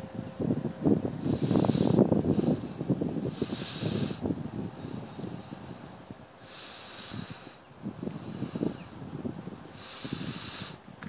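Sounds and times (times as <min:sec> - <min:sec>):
wind buffeting microphone: 0:00.0 - 0:11.0
hissing exhale through nose: 0:01.2 - 0:10.9.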